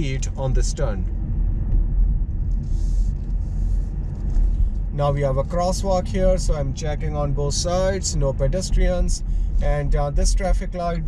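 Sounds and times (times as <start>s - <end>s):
car cabin road and engine rumble: 0.0s - 11.0s.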